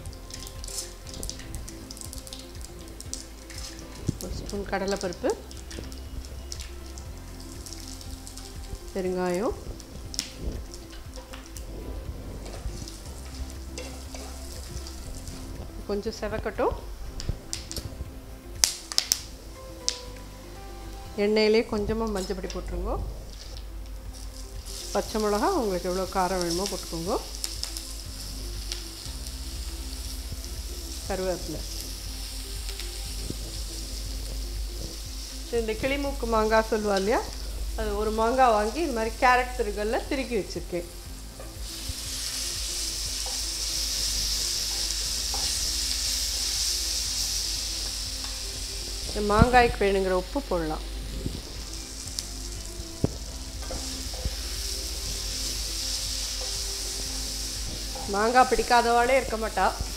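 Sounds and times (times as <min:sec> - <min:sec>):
hot oil sizzling: 0:00.0 - 0:59.9.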